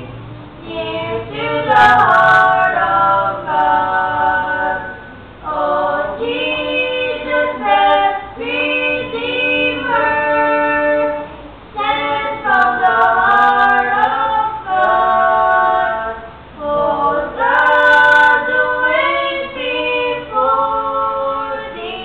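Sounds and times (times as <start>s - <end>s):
girl and boy singing unaccompanied: 0.0s - 22.0s.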